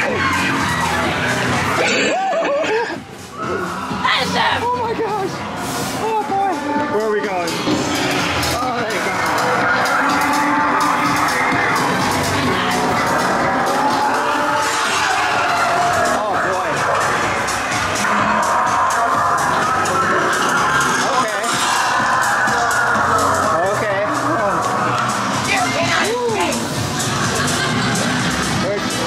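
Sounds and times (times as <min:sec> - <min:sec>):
haunted house music: 0:00.0 - 0:29.0.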